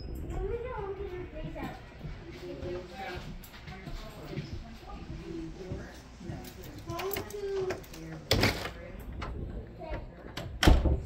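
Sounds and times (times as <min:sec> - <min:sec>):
indistinct background voices: 0:00.0 - 0:10.6.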